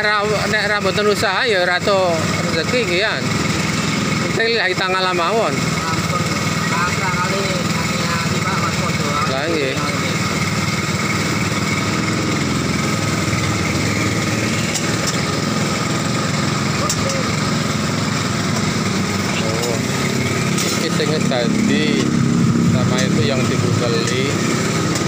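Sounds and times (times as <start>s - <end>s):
small engine idling: 0.0s - 25.0s.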